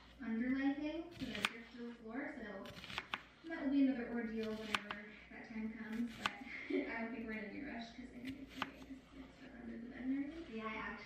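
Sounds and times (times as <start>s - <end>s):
person talking: 0.1s - 2.8s, 3.4s - 11.0s
knife cutting onion: 1.1s - 1.9s, 2.6s - 3.5s, 4.3s - 5.1s, 5.8s - 6.5s, 8.2s - 9.0s.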